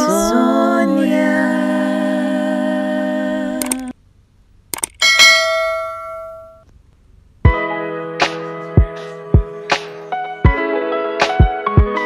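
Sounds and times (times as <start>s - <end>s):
click: 3.6s - 3.8s, 4.7s - 5.0s
bell ding: 5.0s - 6.6s.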